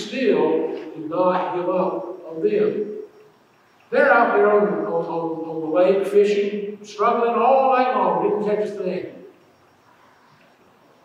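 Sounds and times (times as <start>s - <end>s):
man speaking: 0.0s - 2.8s, 3.9s - 9.2s.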